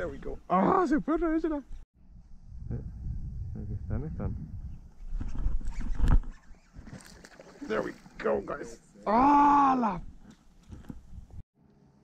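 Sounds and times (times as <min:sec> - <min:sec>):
low rumble: 0:02.0 - 0:05.0.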